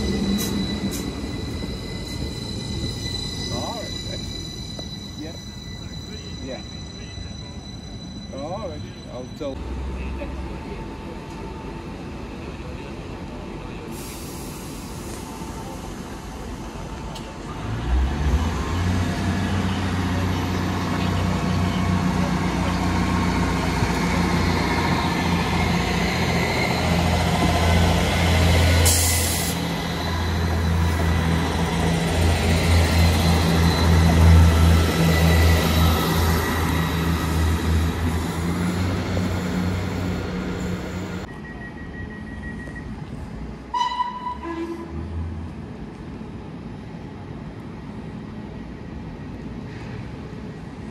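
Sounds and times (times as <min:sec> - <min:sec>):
diesel train engine drone: 0:00.0 - 0:50.9.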